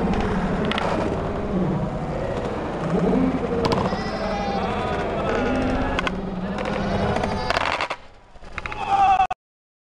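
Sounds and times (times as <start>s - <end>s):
skateboard clattering on concrete: 6.0s - 8.8s.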